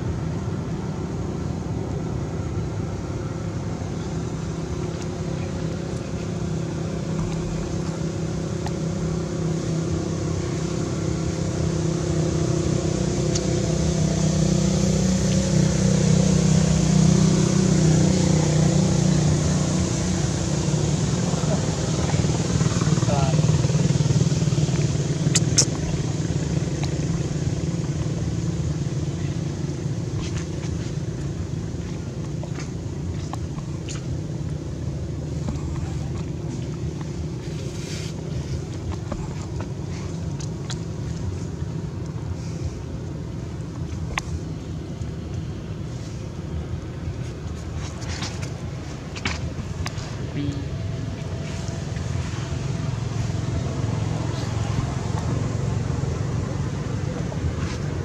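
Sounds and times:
vehicle engine passing: 2.8s - 42.9s, 45.4s - 58.0s.

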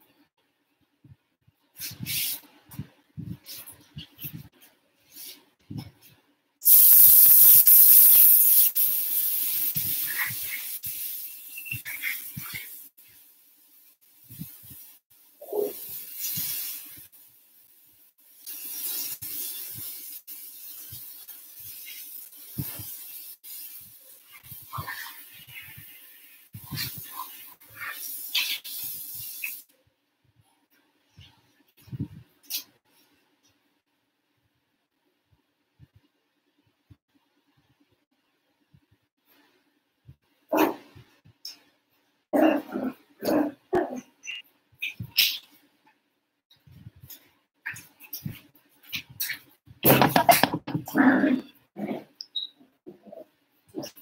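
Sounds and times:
faint steady hiss: 0.0s - 42.3s
dog making small noises: 15.4s - 15.9s
dog barking: 40.5s - 40.8s.

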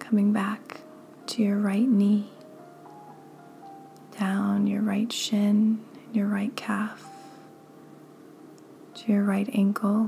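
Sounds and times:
faint ambient music: 0.0s - 10.0s.

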